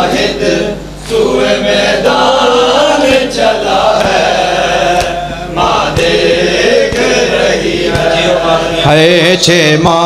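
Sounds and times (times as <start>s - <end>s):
men chanting in unison: 0.0s - 10.0s
rhythmic chest-beating slaps: 2.1s - 8.8s.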